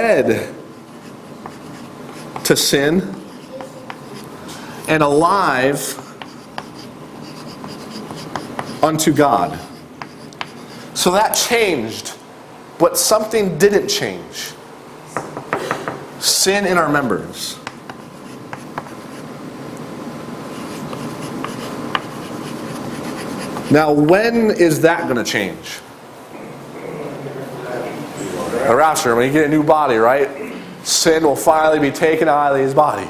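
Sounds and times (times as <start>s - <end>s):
chalk scratching on chalkboard: 0.7s - 4.6s, 5.6s - 11.1s, 17.6s - 19.3s, 20.5s - 23.9s
chalk tapping on chalkboard: 1.0s - 4.3s, 5.8s - 10.8s, 17.6s - 19.3s, 20.6s - 23.7s.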